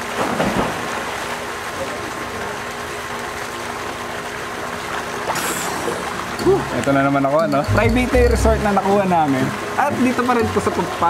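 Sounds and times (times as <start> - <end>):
swimmer splash: 0.0 - 7.1
pool water moving: 0.0 - 11.0.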